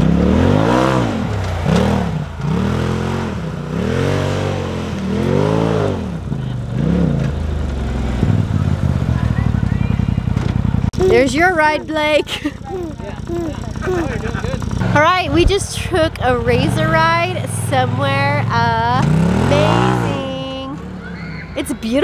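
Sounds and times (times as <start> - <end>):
off-road vehicle engine revving: 0.0 - 22.0.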